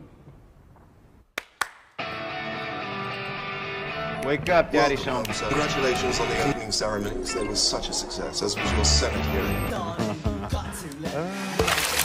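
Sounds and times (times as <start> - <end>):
low rumble: 4.0 - 10.2.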